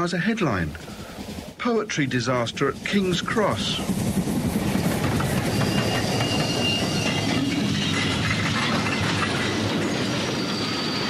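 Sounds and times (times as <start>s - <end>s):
train wheels on rails: 0.1s - 11.0s
high-pitched steel squeals: 4.8s - 11.0s.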